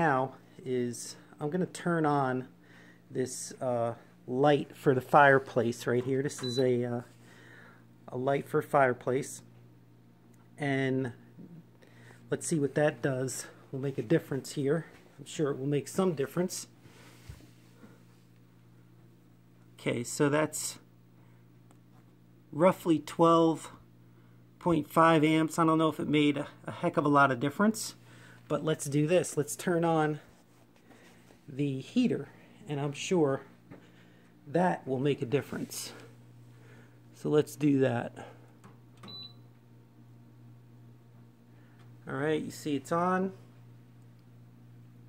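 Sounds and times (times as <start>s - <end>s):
faint electrical hum: 0.0s - 45.0s.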